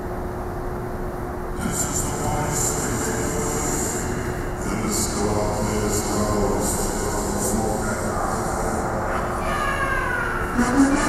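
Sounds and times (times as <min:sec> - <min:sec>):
constant low hum: 0:00.0 - 0:11.0.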